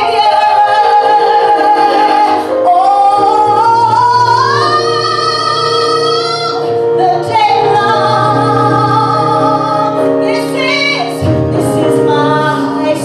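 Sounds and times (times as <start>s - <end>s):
woman singing gospel into microphone: 0.0s - 13.0s.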